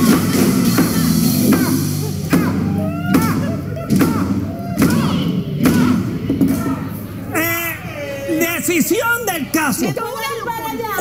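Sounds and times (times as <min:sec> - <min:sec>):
high shout: 0:00.0 - 0:09.4
voices: 0:00.0 - 0:11.0.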